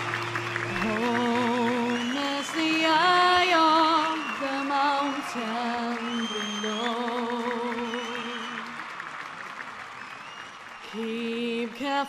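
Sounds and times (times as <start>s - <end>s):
audience applause: 0.0s - 12.0s.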